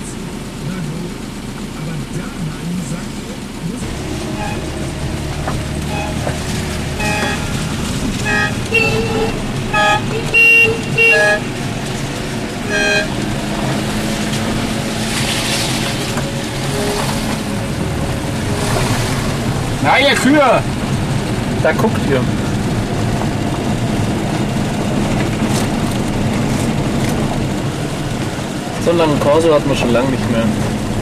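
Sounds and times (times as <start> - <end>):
car engines running: 0.0 - 31.0
car horns tooting: 3.8 - 14.8, 15.6 - 20.6.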